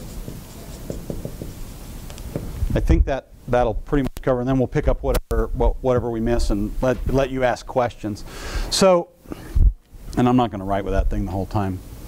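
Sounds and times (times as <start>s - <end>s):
marker writing on whiteboard: 0.0s - 1.8s.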